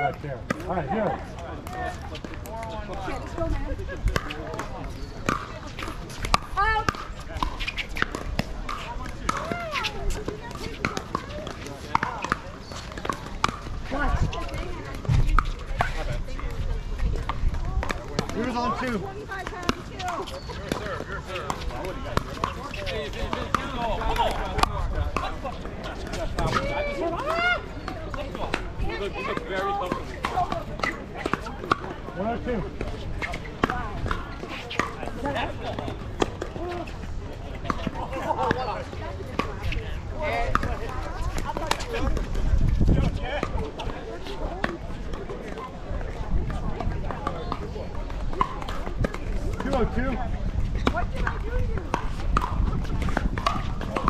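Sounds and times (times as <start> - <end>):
overlapping chatter: 0.0 - 54.0.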